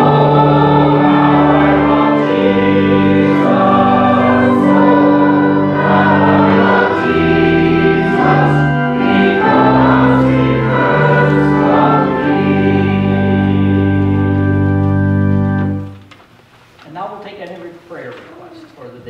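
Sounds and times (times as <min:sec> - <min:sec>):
group singing a hymn: 0:00.0 - 0:14.8
organ accompaniment: 0:00.0 - 0:16.1.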